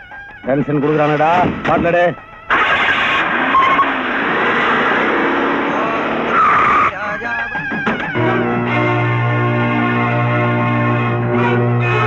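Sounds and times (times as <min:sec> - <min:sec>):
cars rushing engines and tyres: 0:02.5 - 0:06.9.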